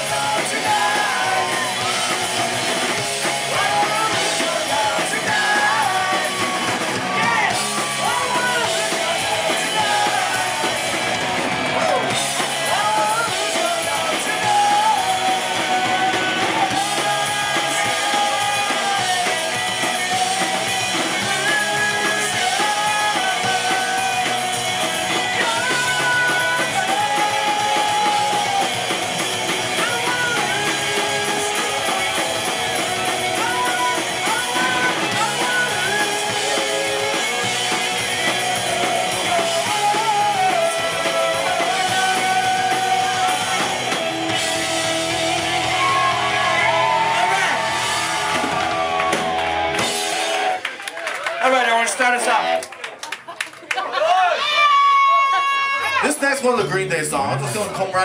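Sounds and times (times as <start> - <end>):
person singing: 0.0 - 50.3
pop-punk band playing: 0.0 - 53.8, 54.4 - 58.0.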